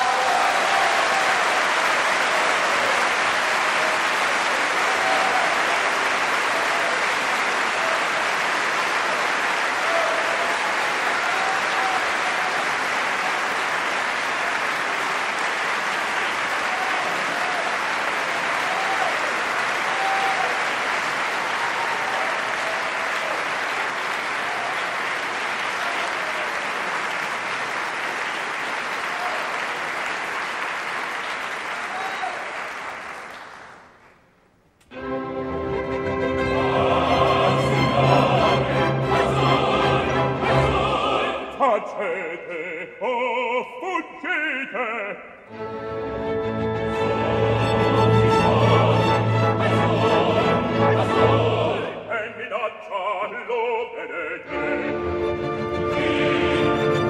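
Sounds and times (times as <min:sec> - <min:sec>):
audience applauding: 0:00.0 - 0:34.2.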